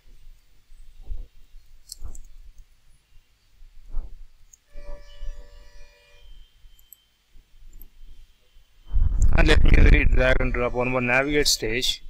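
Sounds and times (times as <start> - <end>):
faint steady tone: 4.4 - 9.3.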